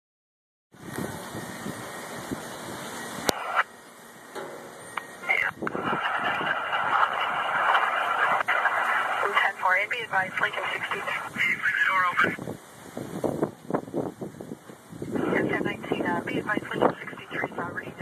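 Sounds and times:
radio static hiss: 2.8s - 12.8s, 15.0s - 18.0s
radio dispatch voices: 3.3s - 3.7s, 5.0s - 12.5s, 15.1s - 18.0s.

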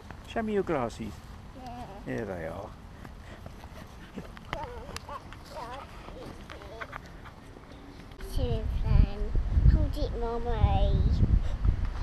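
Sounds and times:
wind rumble on microphone: 8.2s - 12.0s.

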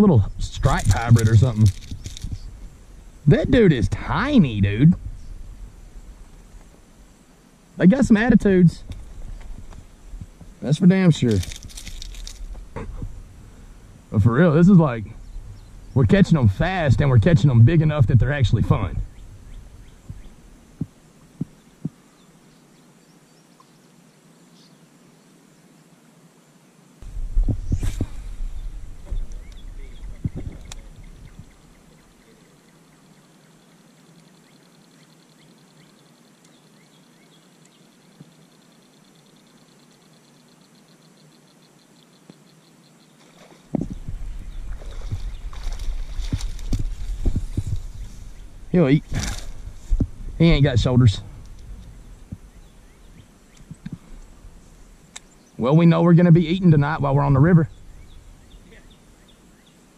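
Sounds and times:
low rumbling microphone noise: 0.0s - 22.3s, 27.0s - 32.4s, 43.7s - 59.9s
pushing through tall grass: 0.5s - 3.4s, 43.2s - 51.5s.

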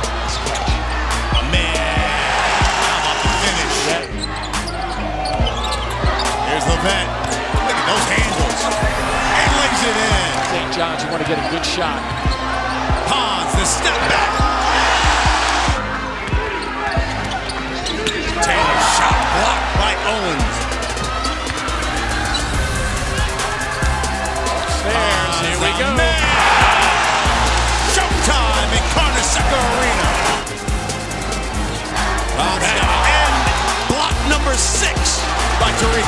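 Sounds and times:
arena crowd noise: 0.0s - 36.0s
sneakers squeaking: 0.2s - 1.6s, 3.9s - 8.7s, 10.9s - 13.1s, 13.7s - 18.6s, 20.6s - 22.6s.

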